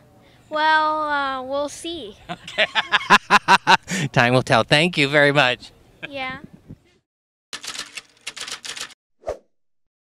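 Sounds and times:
typewriter key clatter: 0:07.6 - 0:09.0.

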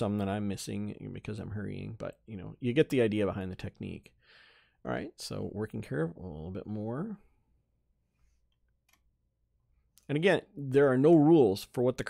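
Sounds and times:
man speaking: 0:00.0 - 0:04.2, 0:04.8 - 0:07.4, 0:10.0 - 0:12.0
computer mouse click: 0:08.6 - 0:09.1.

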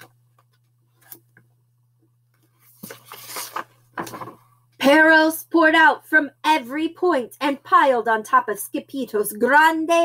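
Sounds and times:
book pages turning: 0:00.0 - 0:01.4, 0:02.4 - 0:04.4.

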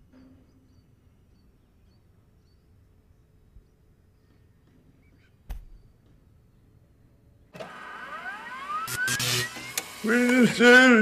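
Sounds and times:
tone gliding upward: 0:08.1 - 0:10.6
sharp clicks: 0:08.8 - 0:10.4.

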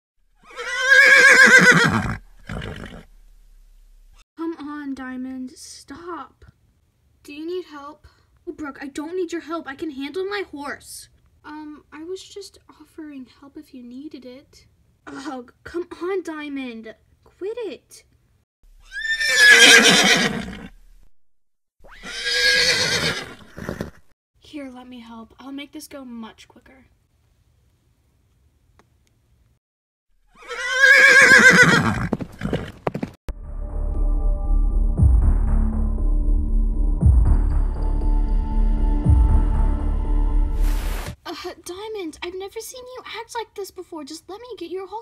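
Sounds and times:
horse whinnying: 0:00.4 - 0:03.1, 0:18.8 - 0:20.8, 0:21.8 - 0:24.1, 0:30.3 - 0:33.1.

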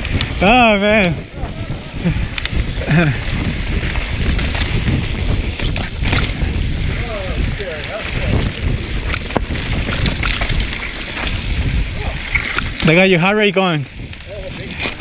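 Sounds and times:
bike rattling over rocks: 0:00.0 - 0:15.0
tyres rumbling on loose dirt: 0:00.0 - 0:15.0
wind buffeting: 0:00.0 - 0:15.0.

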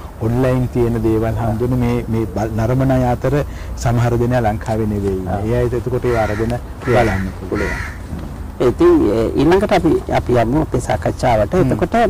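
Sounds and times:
man speaking: 0:00.0 - 0:07.8, 0:08.6 - 0:12.0
crow cawing: 0:06.0 - 0:08.1.

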